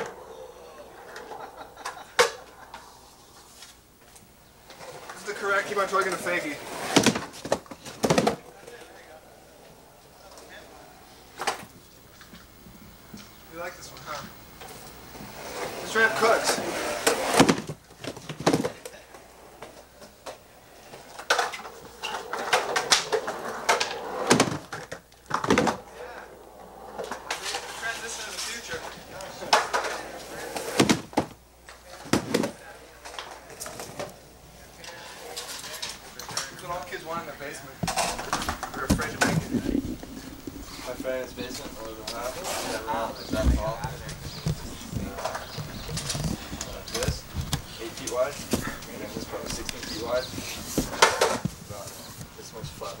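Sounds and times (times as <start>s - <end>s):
indistinct voices talking: 0.0s - 7.0s, 25.7s - 30.8s, 31.7s - 53.0s.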